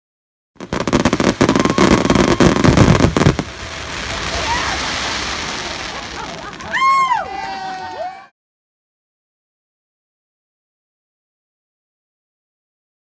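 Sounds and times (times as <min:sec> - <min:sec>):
fireworks hissing: 0:00.6 - 0:07.5
fireworks crackling: 0:00.6 - 0:08.2.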